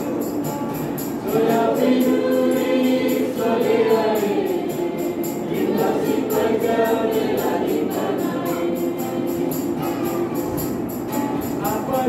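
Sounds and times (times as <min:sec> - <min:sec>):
high percussive beat: 0:00.0 - 0:12.0
choir singing: 0:01.1 - 0:10.8.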